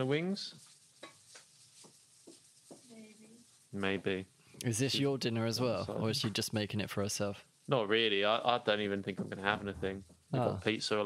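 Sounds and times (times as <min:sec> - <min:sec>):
person speaking: 0:03.8 - 0:07.9, 0:08.7 - 0:10.8.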